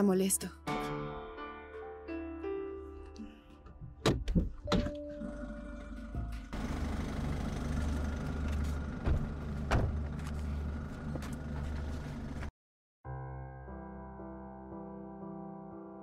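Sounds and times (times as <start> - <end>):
car door thunking open: 4.0 - 5.0, 9.0 - 10.1
car door shutting thuds: 4.0 - 5.1, 8.6 - 10.4
low outdoor rumble: 5.2 - 12.5.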